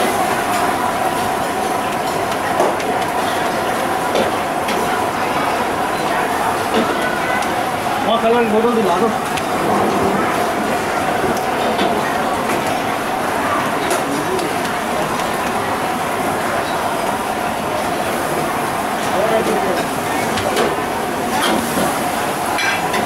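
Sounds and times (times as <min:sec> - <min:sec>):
kitchen roar: 0:00.0 - 0:23.0.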